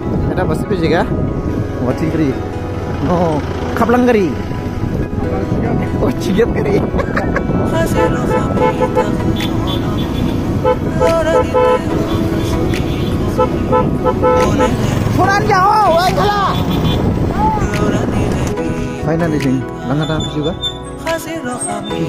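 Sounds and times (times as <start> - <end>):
vehicle rumbling on dirt road: 0.0 - 22.0.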